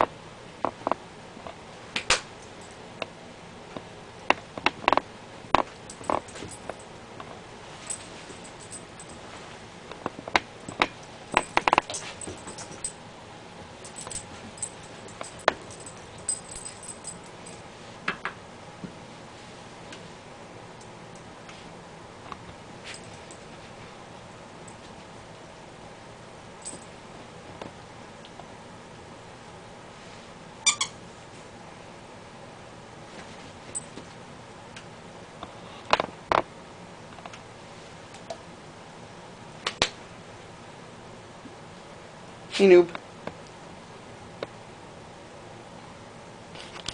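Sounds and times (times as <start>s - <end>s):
rubber dog toy squeaking: 30.6s - 31.0s.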